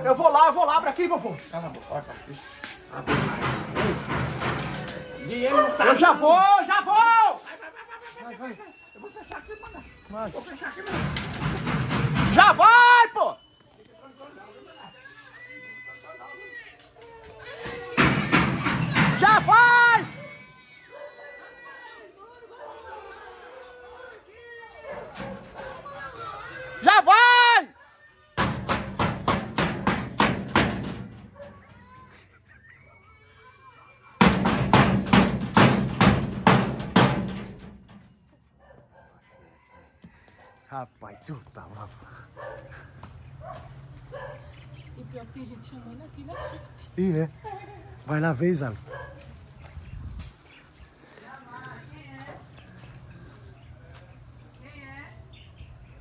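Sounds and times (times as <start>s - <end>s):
rapid pounding on a gate: 3.0s - 5.4s, 10.8s - 13.1s, 17.6s - 20.4s, 28.4s - 32.0s, 34.2s - 38.3s.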